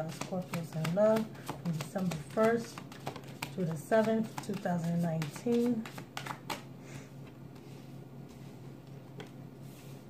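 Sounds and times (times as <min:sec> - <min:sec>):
cards being shuffled: 0:00.1 - 0:06.7.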